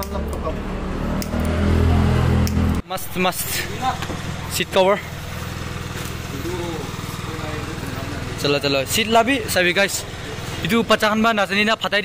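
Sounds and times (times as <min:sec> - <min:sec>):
small engine idling: 0:03.0 - 0:12.0.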